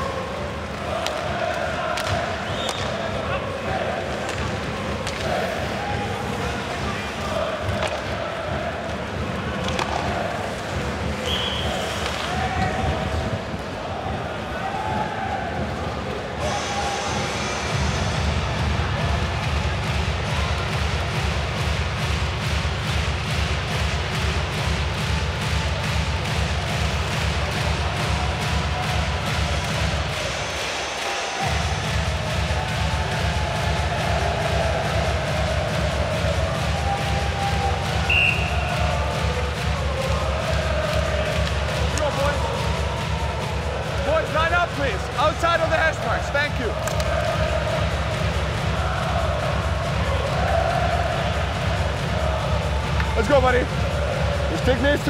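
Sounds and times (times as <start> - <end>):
voices: 0.0 - 22.5, 23.8 - 55.0
arena music with heavy bass beat: 16.4 - 55.0.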